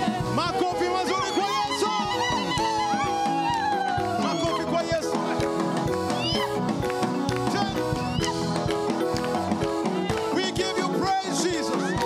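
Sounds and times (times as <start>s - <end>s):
gospel singing with band: 0.0s - 12.0s
hand claps: 6.7s - 10.5s.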